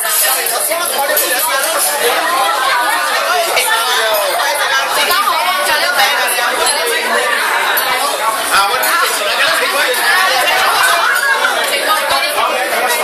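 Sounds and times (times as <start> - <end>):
group chatter: 0.0 - 13.0.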